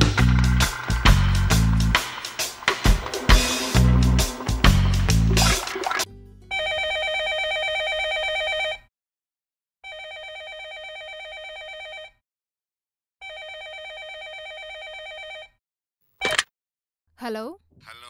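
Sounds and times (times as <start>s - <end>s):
telephone warbling ring: 5.4s - 8.8s.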